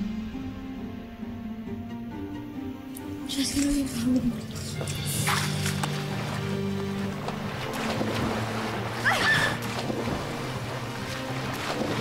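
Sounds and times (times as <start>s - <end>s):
background music with low notes: 0.0s - 12.0s
water splashing in pool: 4.2s - 12.0s.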